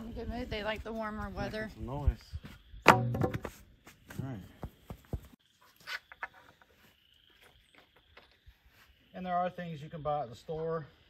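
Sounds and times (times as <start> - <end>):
sharp wooden thunk: 2.8 - 3.6
wooden boards knocking: 2.8 - 3.6.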